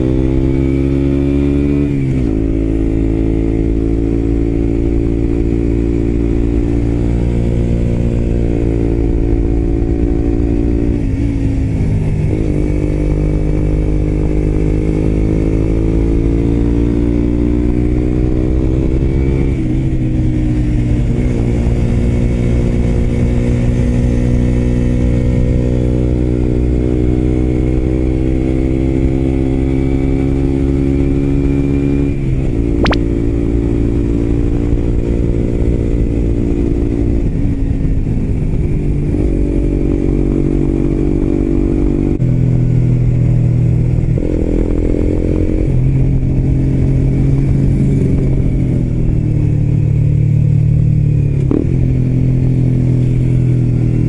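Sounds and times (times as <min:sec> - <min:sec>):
motorcycle engine pulling uphill: 0:00.0 - 0:54.0.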